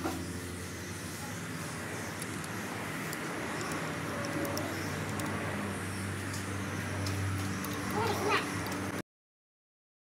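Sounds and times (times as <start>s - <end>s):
low mechanical hum: 0.0s - 9.0s.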